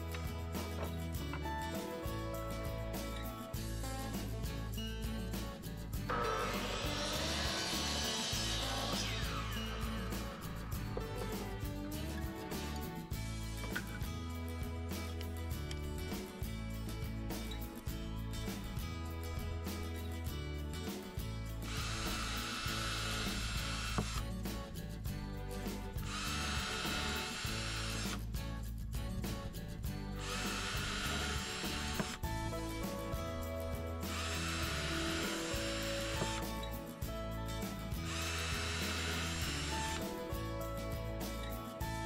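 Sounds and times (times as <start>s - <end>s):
background music: 0.0s - 42.0s
cordless drill boring into wood: 6.1s - 10.3s, 21.6s - 24.3s, 26.0s - 28.2s, 30.2s - 32.3s, 34.0s - 36.6s, 38.0s - 40.2s.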